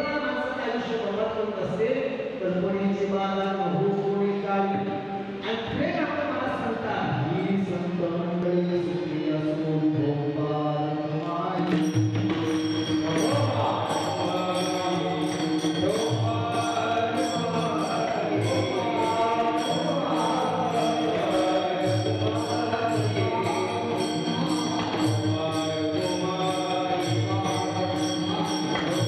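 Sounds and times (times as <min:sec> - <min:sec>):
hand cymbals struck in rhythm: 0:11.6 - 0:29.0
sustained drone tone: 0:12.2 - 0:29.0
group chanting: 0:13.2 - 0:29.0.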